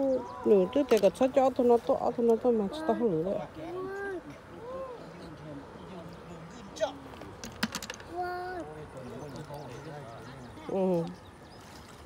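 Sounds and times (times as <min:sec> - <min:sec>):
hard objects clicking together: 0:07.4 - 0:08.1.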